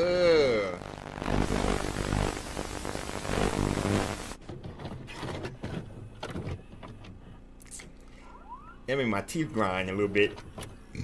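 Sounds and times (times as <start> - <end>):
harsh video static: 0.0 - 4.4
low buzzing hum: 0.0 - 4.4.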